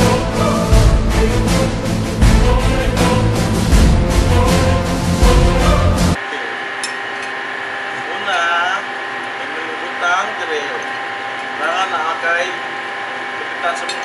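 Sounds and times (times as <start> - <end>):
theme music: 0.0 - 6.2
shipboard machinery hum: 0.0 - 14.0.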